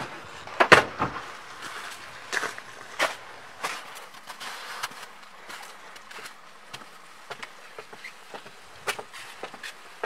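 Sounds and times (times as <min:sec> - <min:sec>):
footsteps on wooden stairs: 0:00.7 - 0:09.8.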